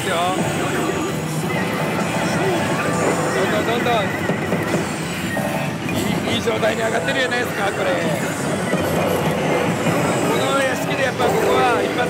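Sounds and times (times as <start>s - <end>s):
machines rattling and clicking: 0.0s - 12.0s
slot machines electronic sound effects: 0.0s - 12.0s
nearby slot machine tones: 0.4s - 12.0s.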